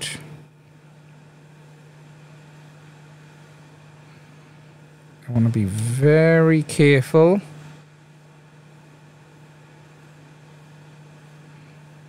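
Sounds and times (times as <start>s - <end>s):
hot air blower hissing: 2.0s - 7.7s.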